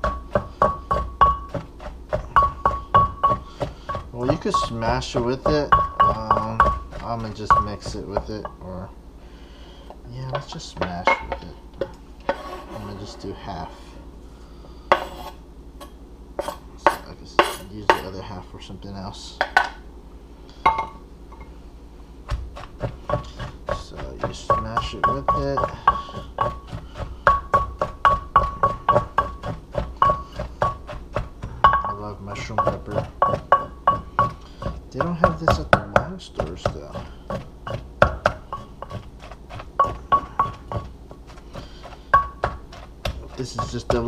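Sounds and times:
pestle pounding in wooden mortar: 0.0 - 8.7, 10.2 - 12.0, 22.2 - 44.0
bowl clinking: 31.6 - 34.3.

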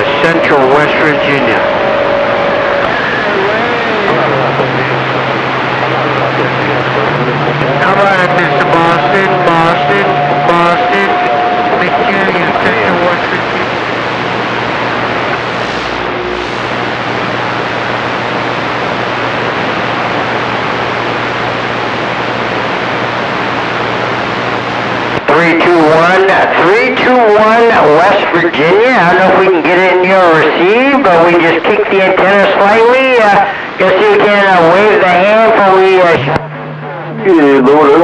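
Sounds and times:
voice over radio: 0.0 - 1.8, 2.8 - 16.8, 25.2 - 38.0
low hum: 0.0 - 25.2, 33.4 - 38.0
radio static hiss: 0.0 - 38.0.

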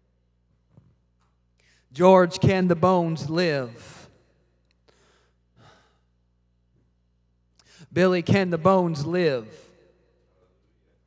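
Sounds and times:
faint steady hum: 0.0 - 11.0
breath into a microphone: 1.6 - 1.9, 4.9 - 6.1, 7.6 - 7.9.

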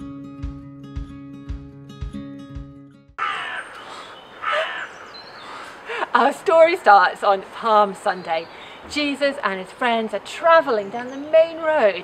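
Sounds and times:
bird harsh calls: 3.2 - 6.0
outdoor hiss: 3.4 - 10.3.

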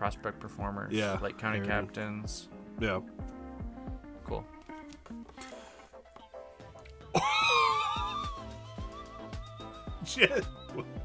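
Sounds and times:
background music with steady beat: 0.0 - 11.0
man squealing excitedly: 7.2 - 10.8.

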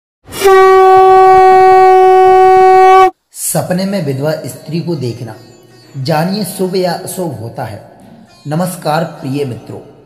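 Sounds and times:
conch shell blown: 0.3 - 3.2.

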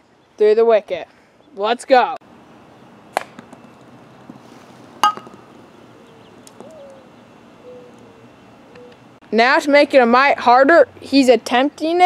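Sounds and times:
mallet striking ball: 5.0 - 5.4
ball bouncing on concrete: 5.0 - 5.5.

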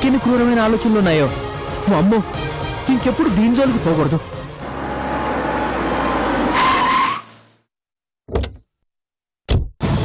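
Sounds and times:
car approaching and braking: 4.4 - 7.7
tyre squeal: 6.0 - 7.4.

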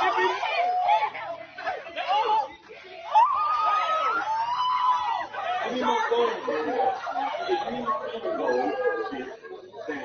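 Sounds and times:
long high shout: 0.0 - 7.6
teenagers laughing: 0.0 - 10.0
teenagers shouting: 0.0 - 10.0.

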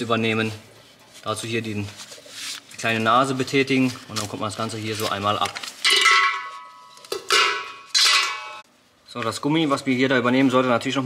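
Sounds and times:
ringing metallic clanks: 5.9 - 8.6.

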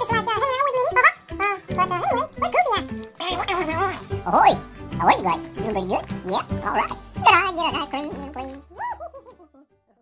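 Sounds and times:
upbeat background music: 0.0 - 10.0.

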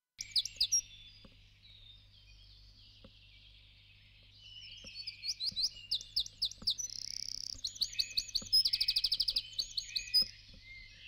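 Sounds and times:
bird chirping: 0.2 - 11.0.

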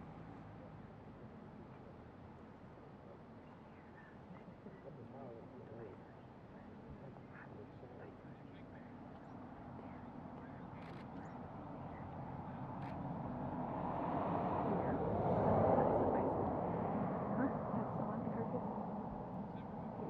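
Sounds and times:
vehicle passing: 12.4 - 20.0.

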